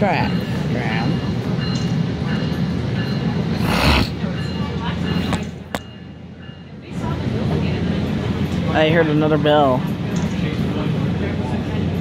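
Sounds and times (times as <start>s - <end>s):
train rumble on track: 0.0s - 12.0s.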